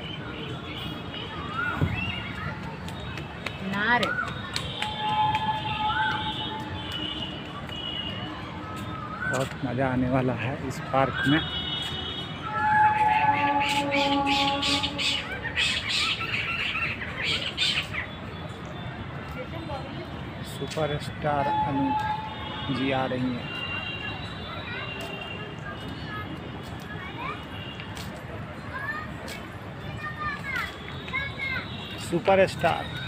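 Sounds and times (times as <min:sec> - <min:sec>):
outdoor background noise: 0:00.0 - 0:33.0
high-pitched gliding voice calls: 0:12.5 - 0:17.9
birds squawking harshly: 0:12.7 - 0:18.1.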